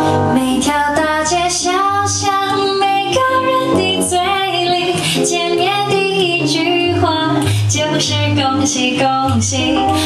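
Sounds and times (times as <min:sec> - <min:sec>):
bass line: 0:00.0 - 0:10.0
instrumental jazz accompaniment: 0:00.0 - 0:10.0
woman singing: 0:00.2 - 0:10.0.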